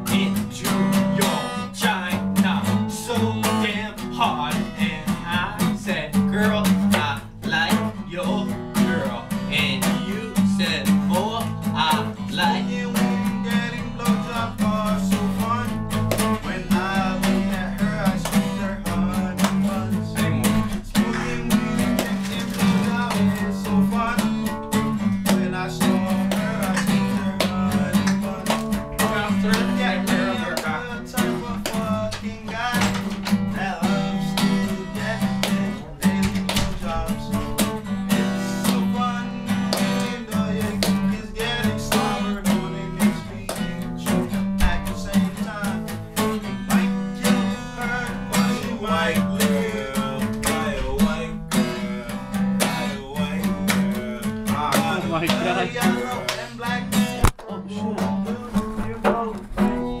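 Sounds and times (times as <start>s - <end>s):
acoustic guitar strumming: 0.0s - 60.0s.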